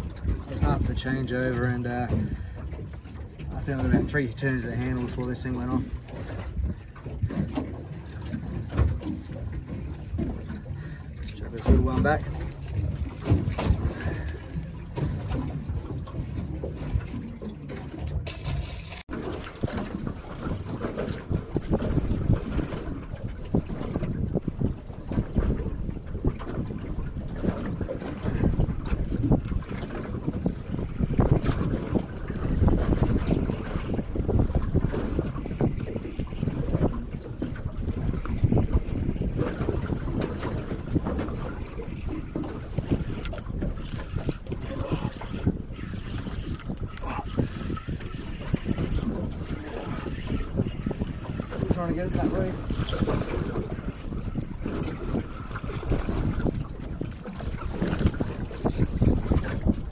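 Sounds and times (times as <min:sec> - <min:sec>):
water lapping against boat hull: 0:00.0 - 0:59.9
wind buffeting microphone: 0:00.0 - 0:59.9.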